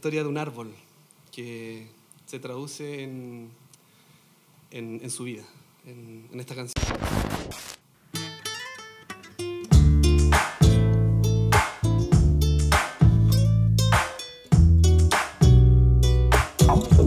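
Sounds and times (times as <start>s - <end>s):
static hiss burst: 6.6s - 8.0s
acoustic guitar picking notes: 8.1s - 17.0s
deep electric bass notes: 14.6s - 17.0s.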